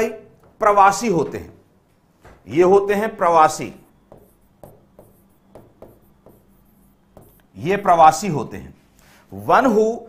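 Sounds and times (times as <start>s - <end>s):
stylus tapping and scratching screen: 3.8s - 7.8s.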